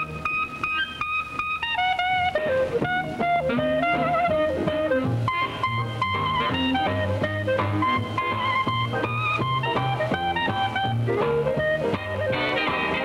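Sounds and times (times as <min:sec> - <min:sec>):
band accompanying: 0:00.0 - 0:13.0
jazz clarinet solo: 0:00.0 - 0:13.0
bass line: 0:02.1 - 0:13.0.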